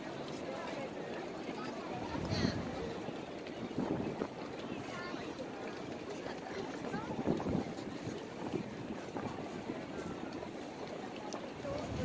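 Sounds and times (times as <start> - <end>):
wind buffeting microphone: 1.9 - 12.0.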